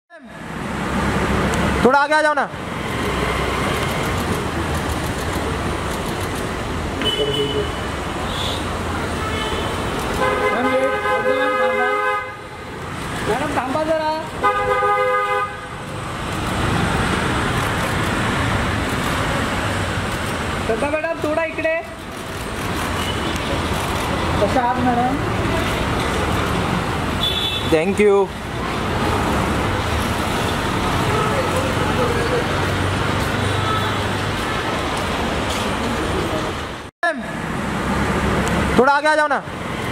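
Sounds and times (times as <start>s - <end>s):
traffic noise: 0.1s - 39.9s
car horn: 7.0s - 12.6s, 14.4s - 15.8s, 27.2s - 27.9s.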